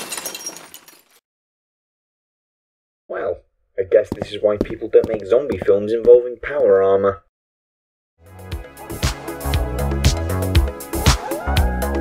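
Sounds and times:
debris clinking and rattling: 0:00.0 - 0:01.2.

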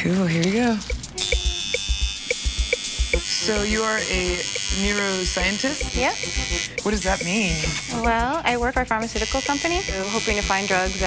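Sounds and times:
background music with steady beat: 0:00.8 - 0:11.0
tattoo machine buzzing: 0:00.9 - 0:11.0.

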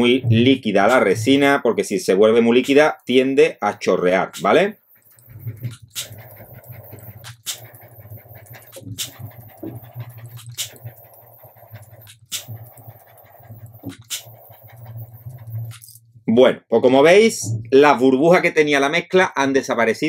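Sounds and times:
butane torch hissing: 0:05.0 - 0:15.8.

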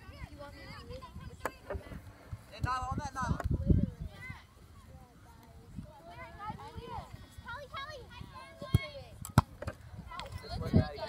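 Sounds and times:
voices calling outdoors: 0:00.0 - 0:11.0.

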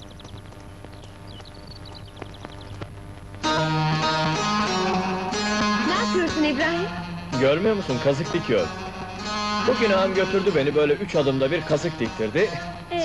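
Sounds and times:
soft plucked-string notes: 0:03.4 - 0:13.0.

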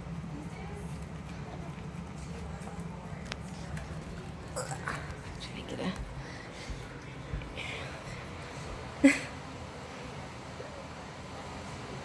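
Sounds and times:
dogs chewing and licking: 0:00.0 - 0:07.5.

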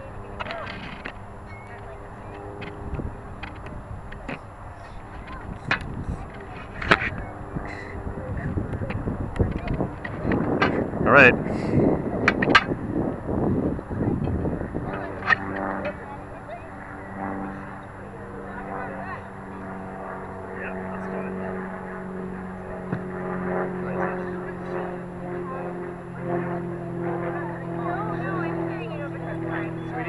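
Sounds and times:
engine-like drone: 0:00.0 - 0:30.0
faint distant voices: 0:00.0 - 0:30.0.

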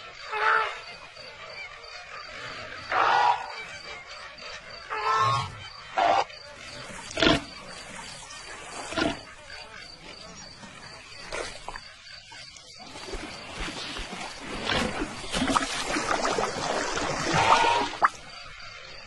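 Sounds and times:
faint high insect-like chirr: 0:00.0 - 0:19.0.

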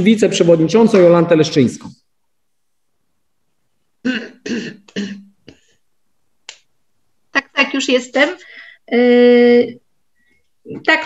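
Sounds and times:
woman clearing her throat: 0:04.0 - 0:05.4.

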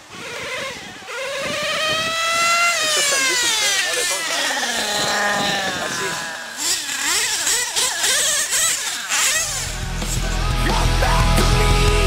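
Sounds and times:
model car nitro engine revving: 0:00.0 - 0:12.0
rock music: 0:09.5 - 0:12.0.

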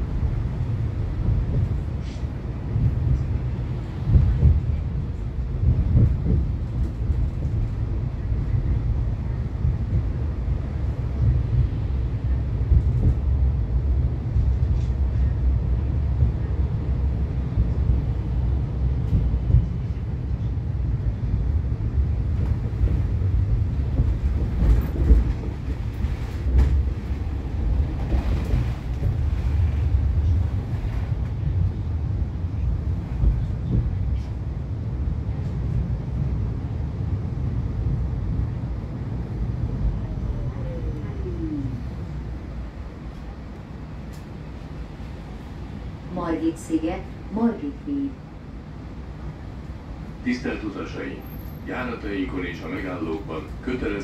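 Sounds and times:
tram wheels rumbling on rails: 0:00.0 - 0:54.0.

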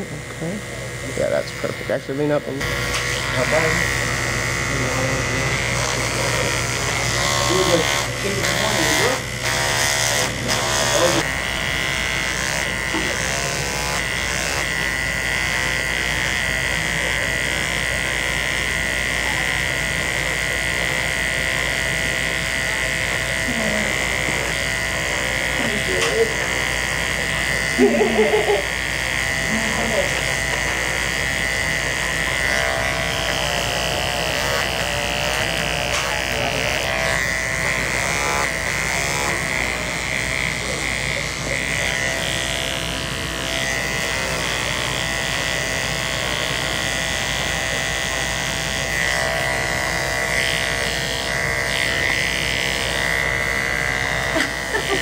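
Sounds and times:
electric hair clippers buzzing: 0:00.0 - 0:55.0.

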